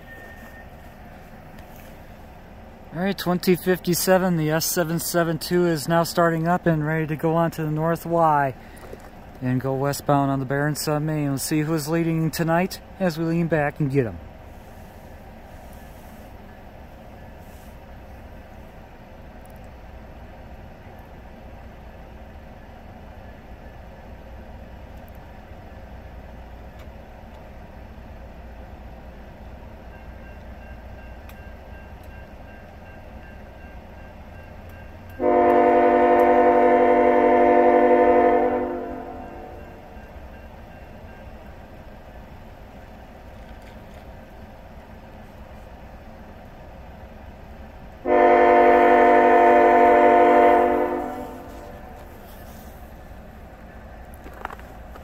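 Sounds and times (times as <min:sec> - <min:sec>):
locomotive air horn blasts: 0:35.2 - 0:39.6, 0:48.0 - 0:52.4.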